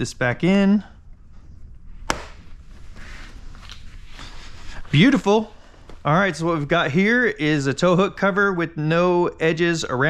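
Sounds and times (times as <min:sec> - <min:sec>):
light scraping and handling: 0:02.6 - 0:06.8.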